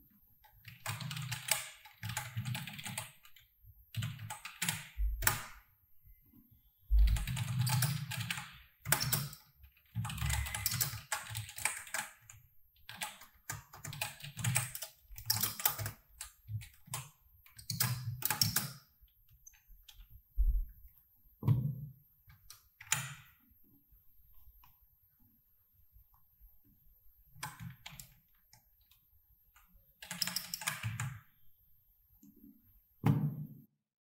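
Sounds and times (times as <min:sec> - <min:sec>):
typing on computer keyboard: 0:00.4 - 0:05.6, 0:06.9 - 0:20.1, 0:22.3 - 0:23.3, 0:27.4 - 0:29.0, 0:30.0 - 0:31.3.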